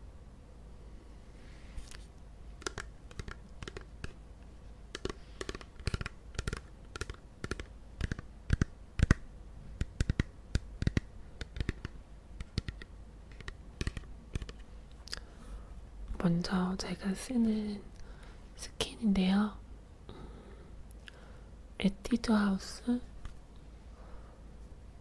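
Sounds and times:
fingernails tapping plastic bottle: 2.6 - 4.2, 4.9 - 9.2, 9.8 - 14.6.

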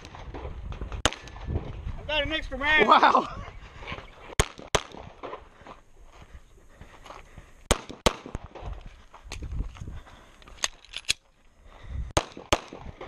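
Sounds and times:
pistol shots: 4.4 - 5.4, 7.7 - 8.7, 12.2 - 13.0
footsteps shuffling: 5.2 - 7.7, 8.6 - 11.9.

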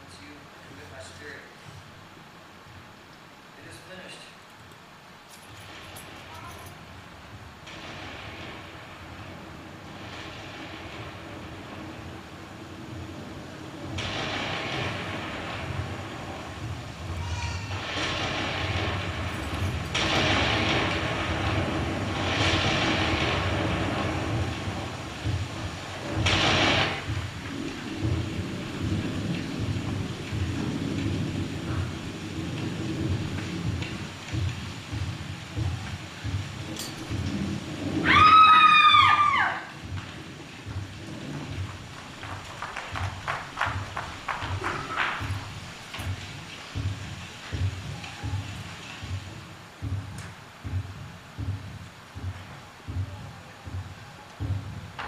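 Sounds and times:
thunder rumbling: 4.9 - 55.0.

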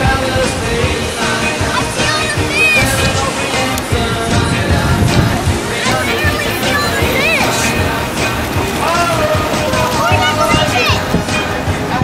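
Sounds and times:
pop song with singing and band: 0.0 - 12.0.

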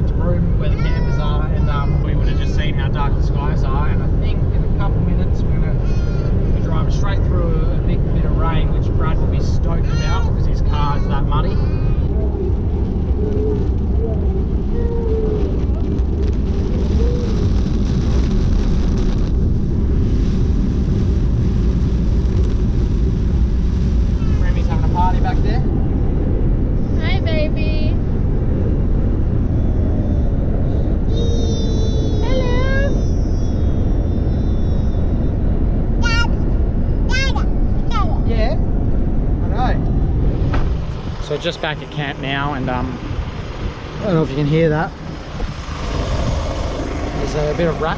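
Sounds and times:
car road and tyre noise: 0.0 - 47.9
baby squealing and babbling: 0.7 - 2.6, 5.8 - 6.5, 9.8 - 12.2, 31.1 - 35.4, 36.0 - 36.4
rain hissing on windscreen: 12.4 - 25.6.

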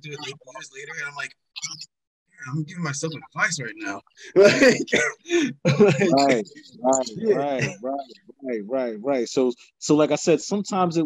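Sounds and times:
man laughing loudly: 4.4 - 6.4.

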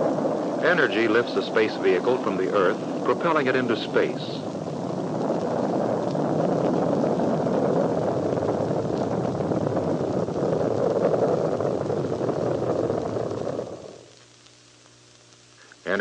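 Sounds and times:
rocket engines roaring: 0.0 - 14.2.

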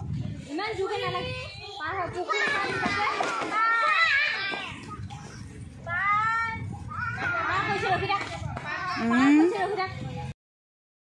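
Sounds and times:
children calling and chattering: 0.0 - 10.4.

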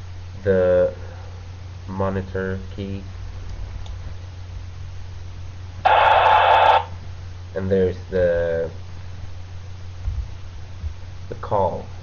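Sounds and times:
radio static hiss: 5.8 - 7.0.

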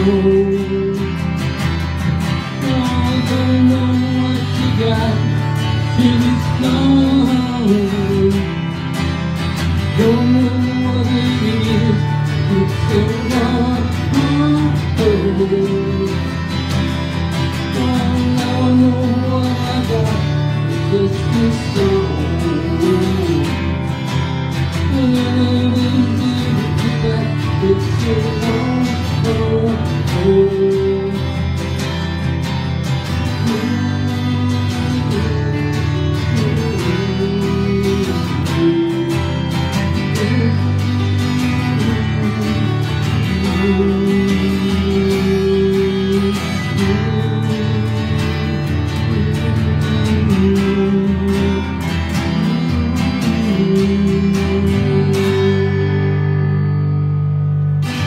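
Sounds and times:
lead guitar melody: 0.0 - 58.0
strummed acoustic guitar chords: 0.0 - 58.0.

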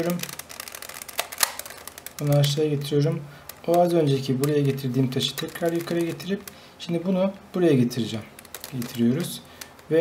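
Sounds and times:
puzzle cube clicks: 0.0 - 2.7, 3.4 - 6.6, 8.2 - 9.9.

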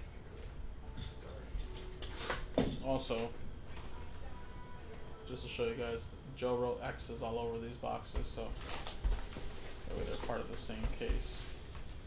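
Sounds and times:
cardboard boxes rustling and scraping: 8.6 - 12.0
man speaking: 9.9 - 11.5.

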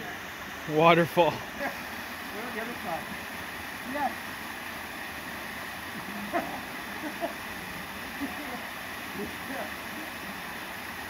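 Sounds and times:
waterfall pouring into pool: 0.0 - 11.0.

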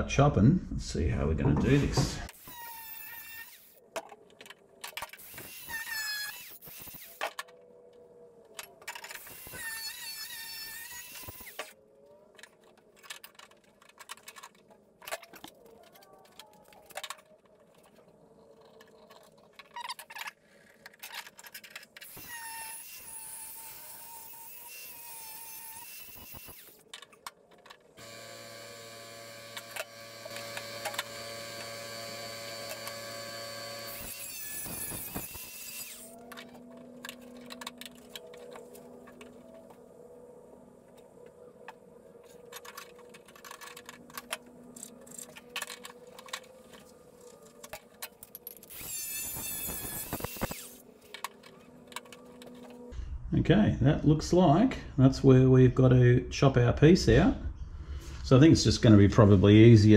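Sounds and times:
angle grinder cutting steel: 5.2 - 7.2, 9.2 - 11.7, 22.0 - 26.8, 28.0 - 36.2, 48.7 - 50.8.

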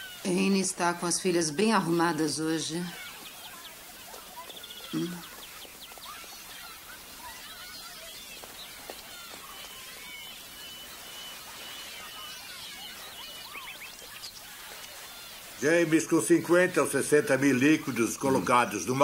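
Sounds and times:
birds chirping: 0.0 - 19.0.

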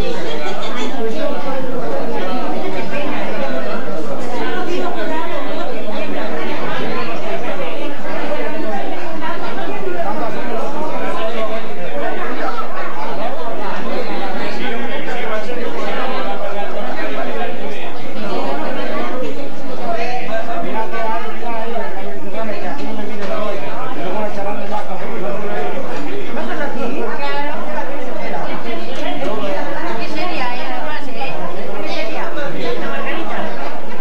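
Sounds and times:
hubbub of overlapping conversation: 0.0 - 34.0.

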